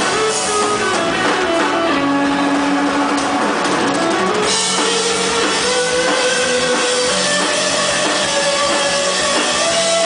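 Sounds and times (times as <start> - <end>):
distorted electric guitar note: 0.0 - 10.0
live rock band playing: 0.0 - 10.0.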